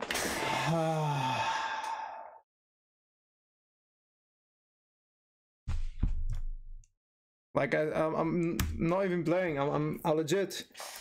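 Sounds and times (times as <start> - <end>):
man groaning: 0.4 - 2.4
man sighing: 0.4 - 2.4.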